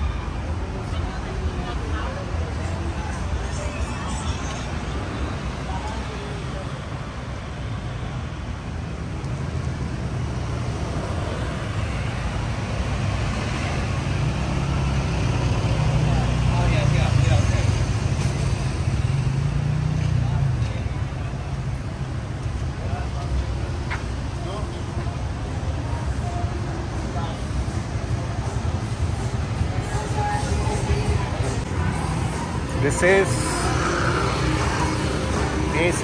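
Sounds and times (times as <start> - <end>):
cars and motorbikes passing: 0.0 - 36.0
passers-by voices: 0.0 - 36.0
vehicle engine hum: 0.0 - 36.0.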